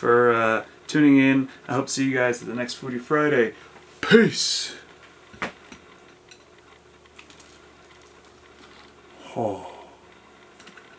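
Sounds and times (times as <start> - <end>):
low room hum: 0.0 - 10.9
small crunching clicks: 6.3 - 9.0
faint chewing: 7.0 - 9.0.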